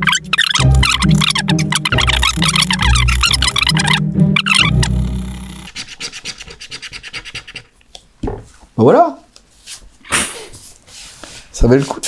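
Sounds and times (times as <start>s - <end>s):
card scraping scratch card: 0.0s - 5.9s.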